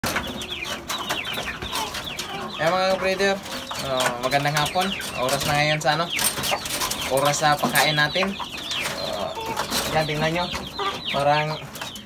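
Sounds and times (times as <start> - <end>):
chickens peeping: 0.0 - 12.0.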